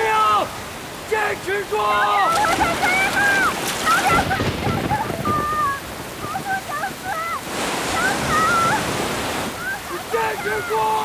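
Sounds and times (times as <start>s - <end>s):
heavy rain: 0.0s - 11.0s
rushing floodwater: 0.0s - 11.0s
girl shouting for help: 2.0s - 8.9s.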